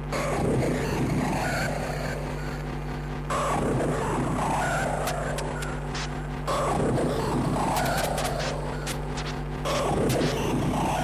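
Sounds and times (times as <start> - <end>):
hardcore techno music: 0.0 - 11.0.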